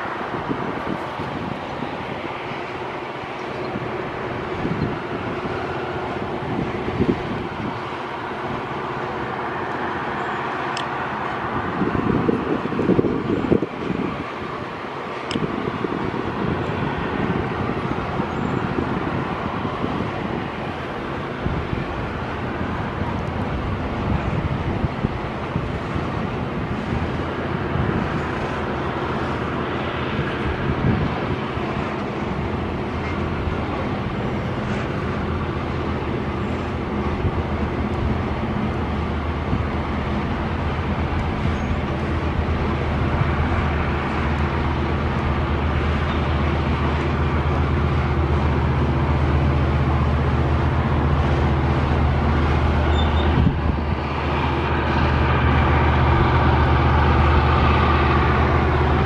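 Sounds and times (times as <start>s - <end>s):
diesel locomotive engine droning: 0.0s - 59.0s.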